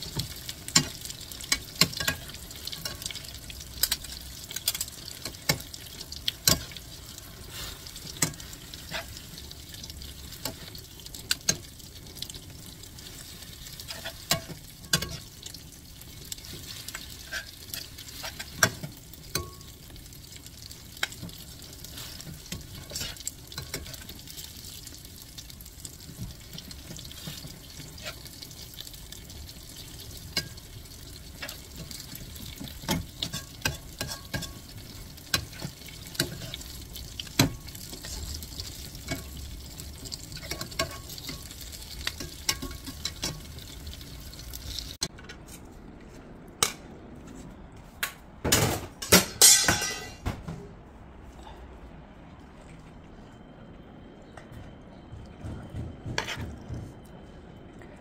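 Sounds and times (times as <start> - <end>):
vegetables sizzling in a wok: 0.0 - 45.1
spatula scraping a pan: 7.5 - 9.3, 13.1 - 15.4, 16.4 - 19.0, 21.8 - 24.2, 31.4 - 34.7.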